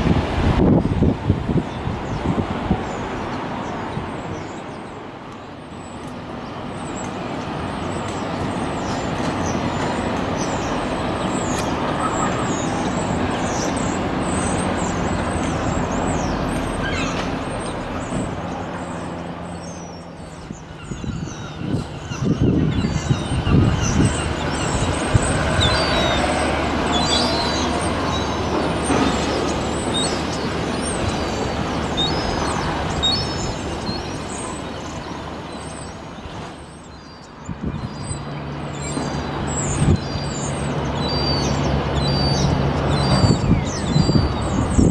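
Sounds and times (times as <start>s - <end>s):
vehicles passing: 0.0s - 44.9s.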